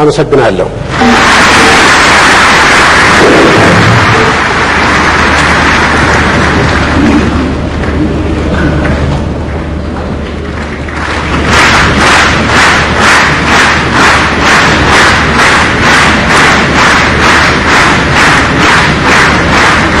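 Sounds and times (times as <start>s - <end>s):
audience clapping in rhythm: 0.9s - 20.0s.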